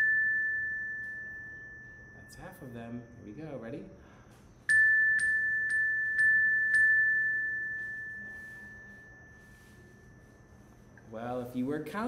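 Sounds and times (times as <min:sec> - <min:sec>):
chime strikes: 0:00.0 - 0:03.5.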